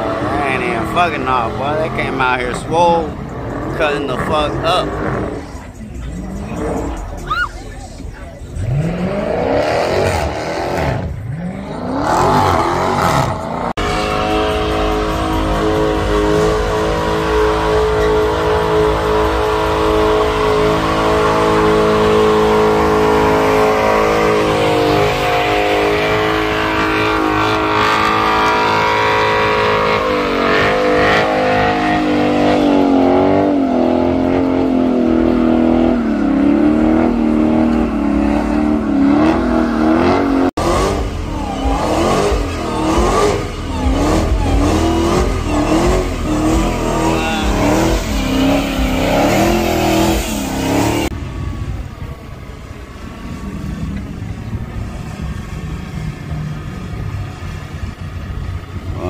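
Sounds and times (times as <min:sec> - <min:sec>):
car engines revving high: 0:00.0 - 0:59.0.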